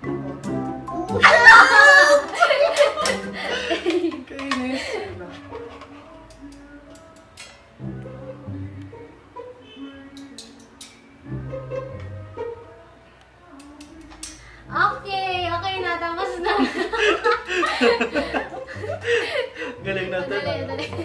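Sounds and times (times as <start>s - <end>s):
light background music: 0.0s - 21.0s
loud hearty laughter: 1.2s - 5.1s, 16.4s - 21.0s.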